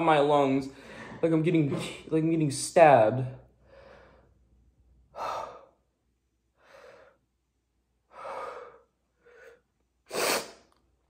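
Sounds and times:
man panting: 5.1 - 5.9, 8.1 - 9.6.

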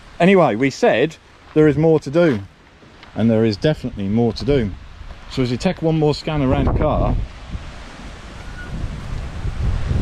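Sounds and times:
wind buffeting microphone: 3.3 - 10.0.

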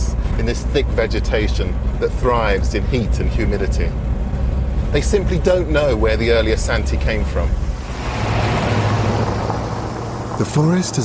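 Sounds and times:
motor vehicle running: 0.0 - 11.0.

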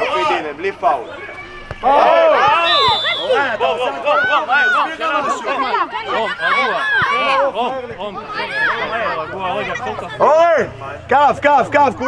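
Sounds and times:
children shouting during play: 1.1 - 7.6, 8.2 - 10.6.

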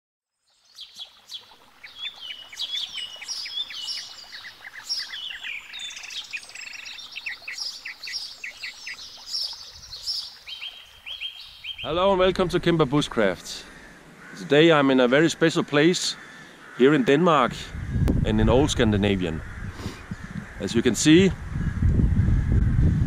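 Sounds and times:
songbirds singing: 0.3 - 22.6.

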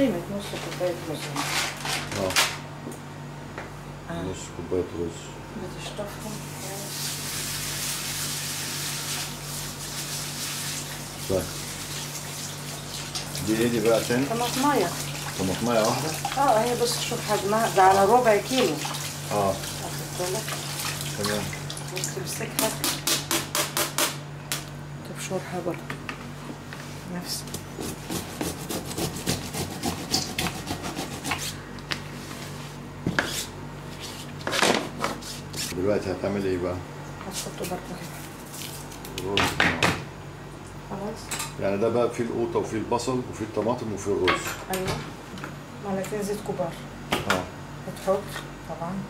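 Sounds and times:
vegetable grating on plastic grater: 27.8 - 31.6.

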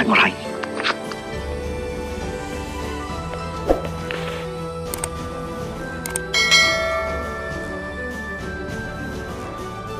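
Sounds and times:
background music: 0.0 - 9.9
bright bell chime: 6.3 - 8.1.

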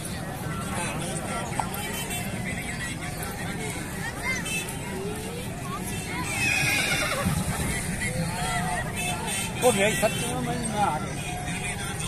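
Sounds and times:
horse whinnying: 6.3 - 7.4.

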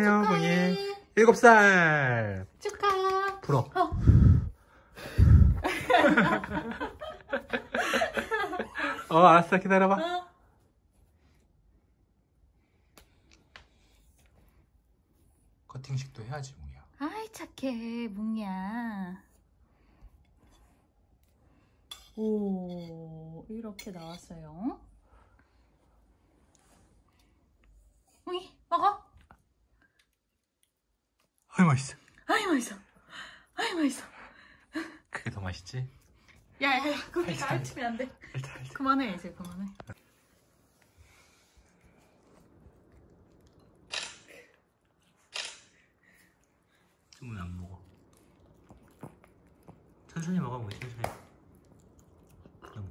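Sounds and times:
dog chewing and licking: 46.4 - 52.9.

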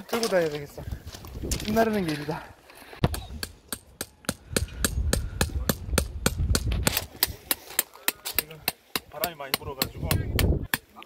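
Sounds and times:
wind rumble on microphone: 4.6 - 7.0.

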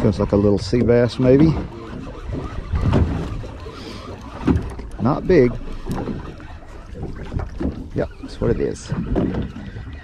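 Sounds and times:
water around boat: 0.0 - 10.0
wind: 0.0 - 10.0.

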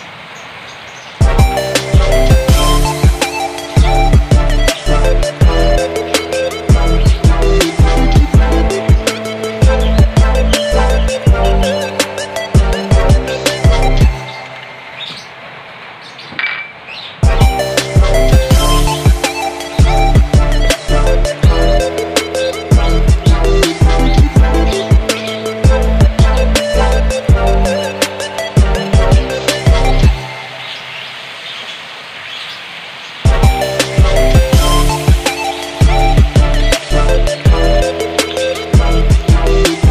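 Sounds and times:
music with a heavy beat: 1.2 - 14.3, 17.2 - 30.3, 33.3 - 39.9.

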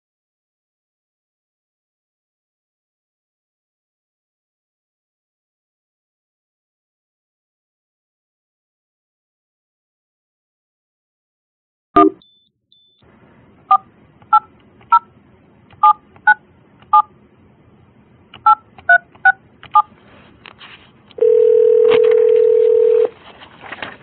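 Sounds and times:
keypad tones: 12.0 - 13.0, 15.8 - 17.1, 18.4 - 19.9, 21.2 - 23.1
phone ringback tone: 21.2 - 23.1.

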